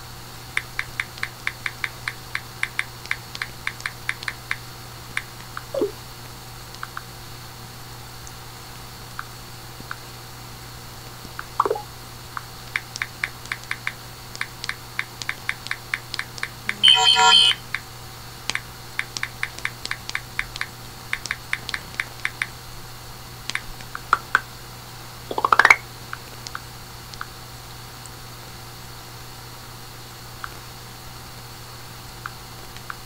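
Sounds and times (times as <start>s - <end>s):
steady low hum: 0.0s - 33.0s
brief tone with overtones: 16.7s - 17.6s.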